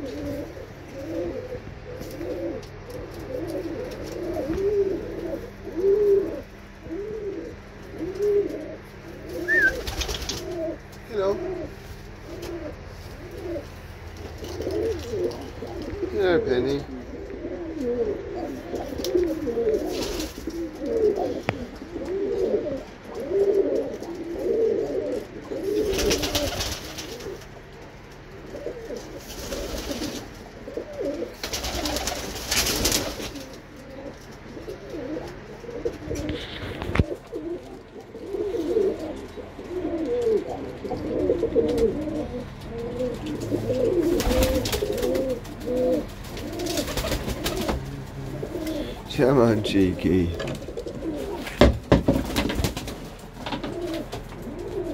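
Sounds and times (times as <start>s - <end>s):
pigeons cooing: 0.0s - 54.9s.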